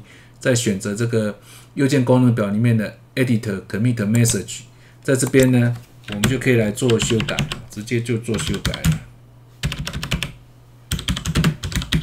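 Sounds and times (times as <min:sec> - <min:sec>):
keyboard typing: 0:06.1 - 0:07.6, 0:08.3 - 0:09.0, 0:09.6 - 0:12.0.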